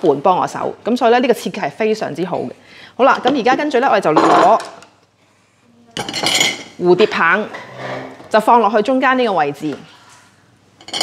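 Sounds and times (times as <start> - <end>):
kitchen utensils clattering: 6.0 - 8.3, 10.8 - 11.0.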